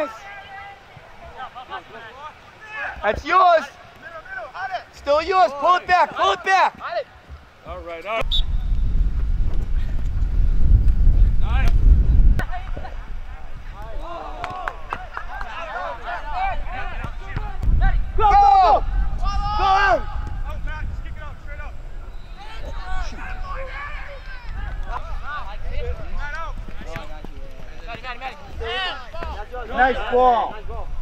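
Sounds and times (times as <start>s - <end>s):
players shouting: 0.0s - 7.2s, 12.4s - 30.7s
wind rumble on microphone: 8.2s - 14.0s, 16.4s - 27.5s.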